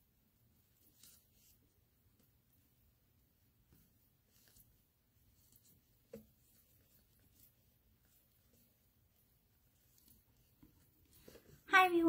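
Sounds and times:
hands rubbing and scratching: 0.6s - 2.6s, 3.6s - 12.0s.

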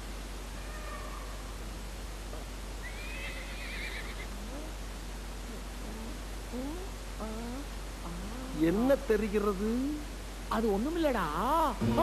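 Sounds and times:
steady hiss: 0.0s - 12.0s
high quavering cry: 2.8s - 4.4s
low hum: 4.3s - 8.7s.

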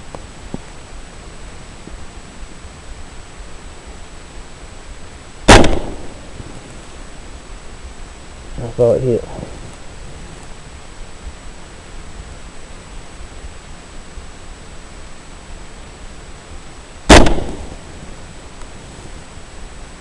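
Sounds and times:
steady hiss: 0.0s - 20.0s
suppressed rifle shot: 5.4s - 6.7s, 17.1s - 18.0s.

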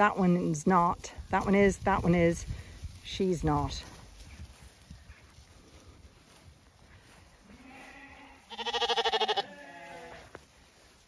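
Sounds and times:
lambs bleating: 7.4s - 10.3s.

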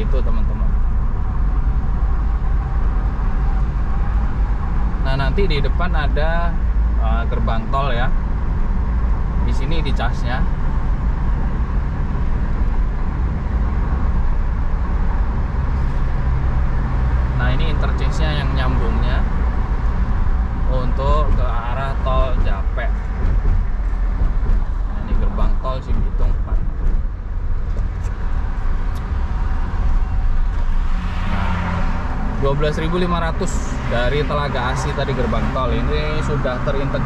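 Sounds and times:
car engine hum: 0.0s - 37.0s
tyre and road noise: 0.0s - 37.0s.

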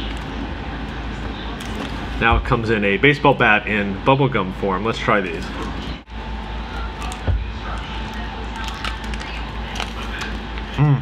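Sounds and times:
plastic wrapper crinkling: 6.8s - 10.6s.

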